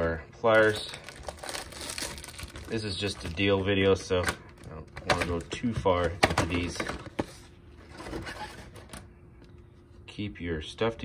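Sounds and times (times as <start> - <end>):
plastic blister pack rustling: 0.4 - 7.1.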